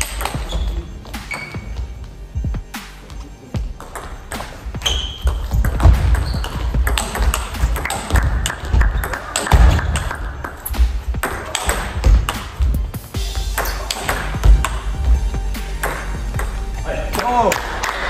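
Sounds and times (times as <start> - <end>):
music with heavy bass: 0.0 - 3.8, 9.5 - 18.0.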